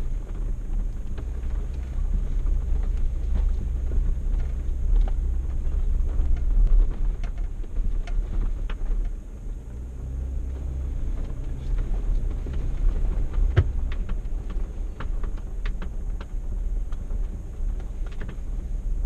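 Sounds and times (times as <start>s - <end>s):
engine and tyre rumble: 0.0s - 19.0s
vehicle clicks and knocks over bumps: 0.0s - 19.0s.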